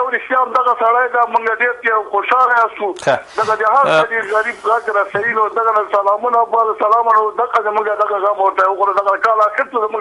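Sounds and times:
person talking over radio: 3.0 - 5.0.

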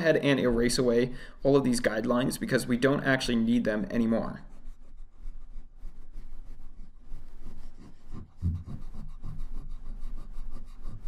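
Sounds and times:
eraser scrubbing paper: 3.5 - 11.0.

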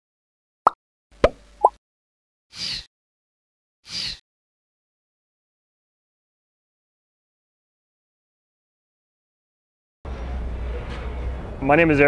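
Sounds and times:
plop sound effects: 1.2 - 1.8.

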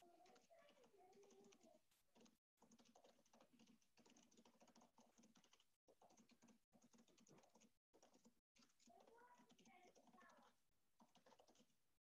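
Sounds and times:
faint keyboard typing: 0.0 - 11.8.

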